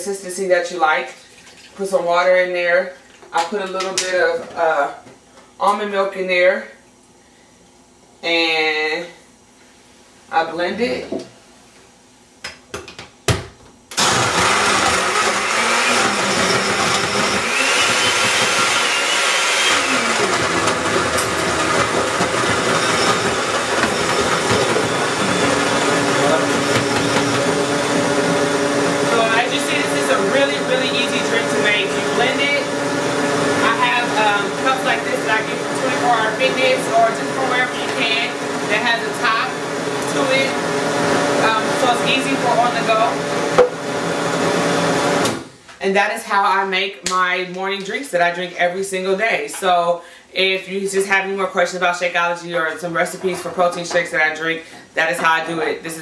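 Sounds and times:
blender crushing ice: 0:14.0 - 0:45.5.

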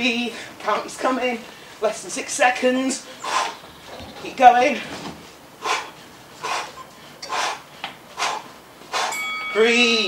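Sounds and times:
person exhaling forcefully: 0:05.6 - 0:07.6.

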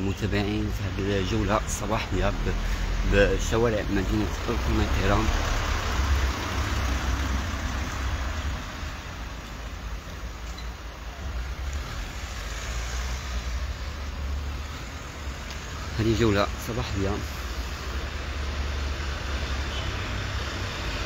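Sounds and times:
cars moving along road: 0:00.0 - 0:21.0
low traffic rumble: 0:00.0 - 0:21.0.

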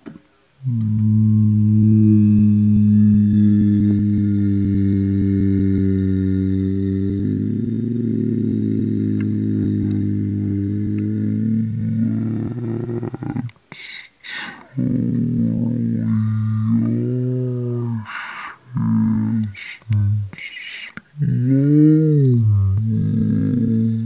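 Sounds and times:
buzzy low electronic tone: 0:00.6 - 0:13.4.

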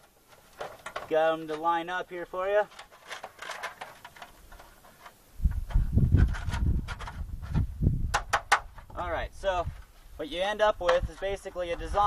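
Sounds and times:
small metallic clicks and scrapes: 0:00.0 - 0:01.8, 0:02.5 - 0:09.0.

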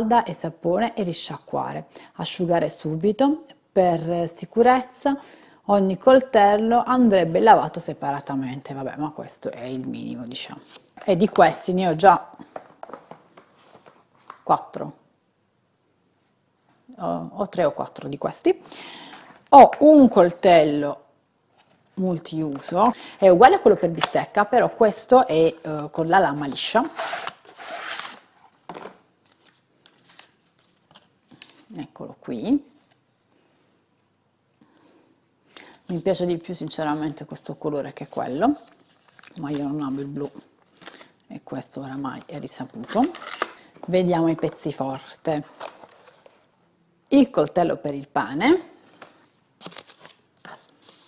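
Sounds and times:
plastic packaging rustling and scraping: 0:10.5 - 0:14.5, 0:25.5 - 0:31.7, 0:38.0 - 0:41.2, 0:42.1 - 0:46.6, 0:48.8 - 0:51.0
packaging rustles and clicks: 0:42.8 - 0:44.7.

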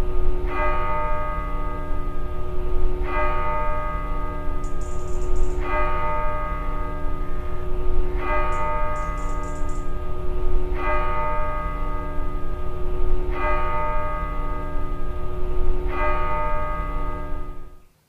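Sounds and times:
bell tolling slowly: 0:00.0 - 0:17.8.

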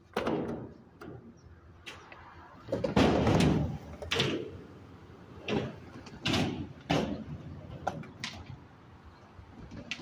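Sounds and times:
skateboard clack: 0:00.0 - 0:08.8, 0:09.6 - 0:10.0
skateboard rolling on concrete: 0:00.0 - 0:10.0.

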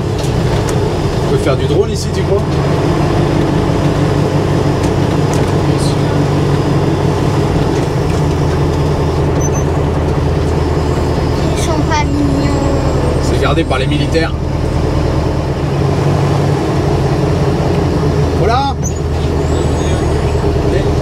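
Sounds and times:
diesel truck engine running: 0:00.0 - 0:21.0
tyres on gravel road: 0:00.0 - 0:21.0.

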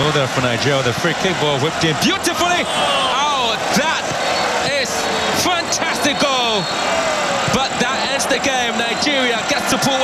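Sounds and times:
stadium crowd noise: 0:00.0 - 0:10.0
excited shouting voices: 0:01.4 - 0:10.0.

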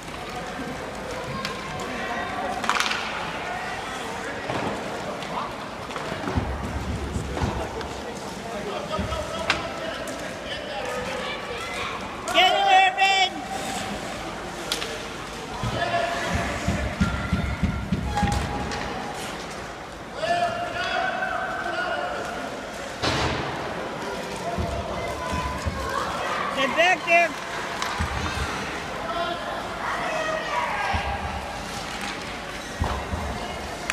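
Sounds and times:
people shouting in echoing rink: 0:00.0 - 0:33.9.

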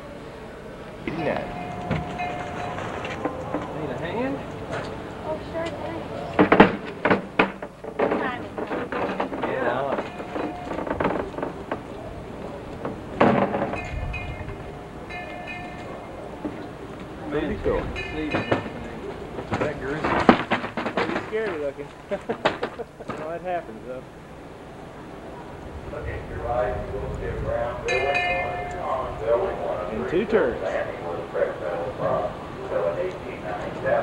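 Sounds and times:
high steady tones: 0:00.0 - 0:08.8
indistinct voices: 0:00.0 - 0:34.0
street noise: 0:00.0 - 0:34.0.

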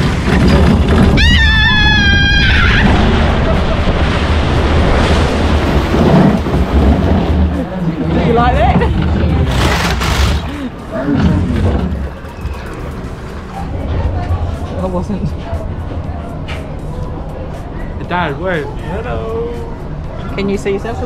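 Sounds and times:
boat splashing through water: 0:00.0 - 0:14.7.

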